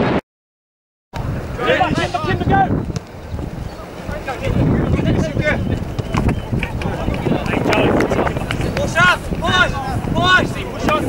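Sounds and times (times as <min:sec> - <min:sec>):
distant shouts: 0:01.2 - 0:11.0
wind buffeting microphone: 0:01.2 - 0:11.0.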